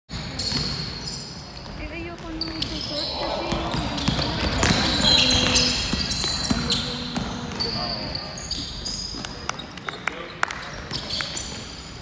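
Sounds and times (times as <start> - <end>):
players' voices: 1.8 - 8.5
basketball bouncing on wood floor: 3.5 - 7.8.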